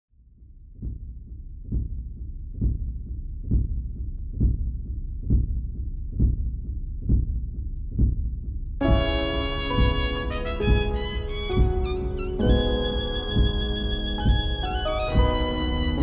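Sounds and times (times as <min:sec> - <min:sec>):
deep bass thumps: 0:00.8 - 0:16.0.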